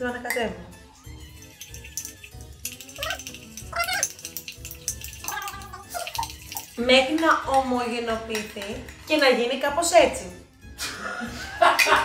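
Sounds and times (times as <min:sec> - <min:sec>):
teaspoon clinking in ceramic mug: 0:00.3 - 0:09.3
cat-like meows: 0:03.0 - 0:04.2, 0:05.2 - 0:06.3.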